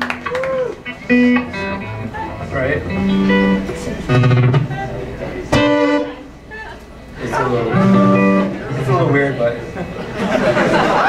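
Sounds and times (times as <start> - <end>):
electric guitar bending notes: 0.0 - 10.2.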